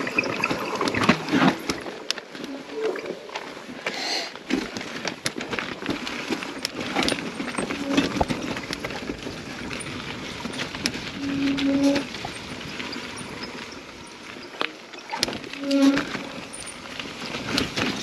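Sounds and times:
bike clattering over rocks: 4.4s - 18.0s.

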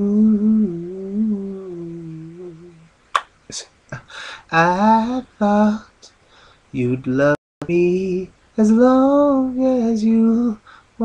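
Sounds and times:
man humming low note: 0.0s - 2.9s.

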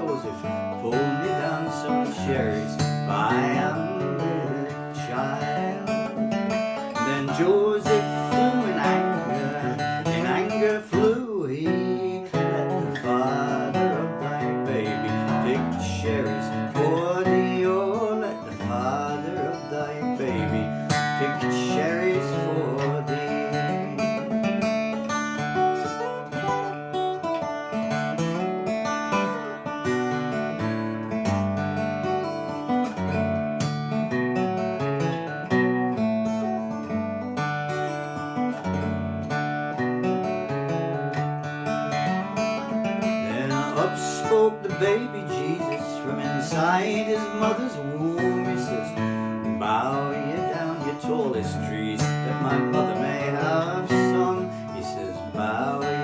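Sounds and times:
fingerstyle acoustic guitar: 0.0s - 56.0s.

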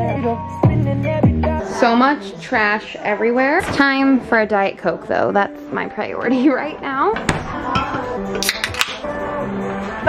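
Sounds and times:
background music with held notes: 0.0s - 10.0s
can pull tab cracking: 8.4s - 9.0s.

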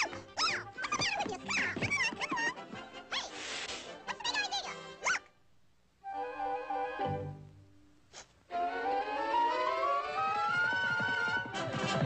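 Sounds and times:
cartoon chipmunk squeaks: 0.0s - 2.5s, 4.2s - 5.3s.

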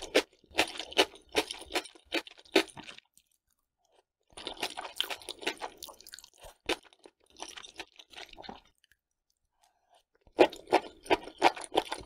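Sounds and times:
wet chewing crunch: 0.0s - 12.0s.

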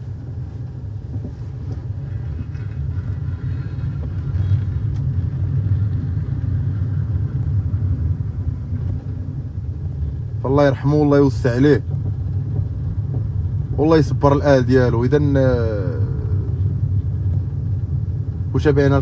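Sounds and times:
vehicle driving rumble: 0.0s - 19.0s.

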